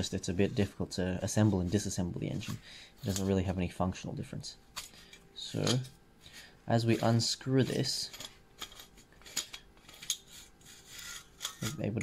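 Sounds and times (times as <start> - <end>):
metal on metal scraping: 6.7 - 12.0.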